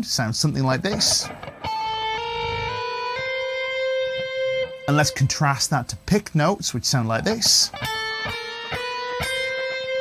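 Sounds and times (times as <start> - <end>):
electric guitar hammer-on notes: 0.9 - 5.4, 7.4 - 10.0.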